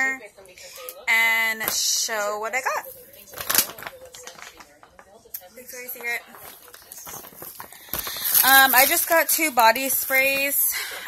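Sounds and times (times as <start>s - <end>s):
woman speaking: 0.0s - 3.3s, 5.3s - 7.3s, 8.0s - 11.0s
faint tv dialogue: 0.0s - 11.0s.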